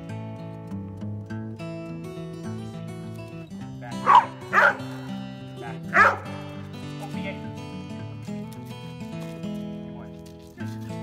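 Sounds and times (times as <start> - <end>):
acoustic guitar music: 0.0 - 11.0
dog barking: 4.0 - 5.1, 5.9 - 6.4.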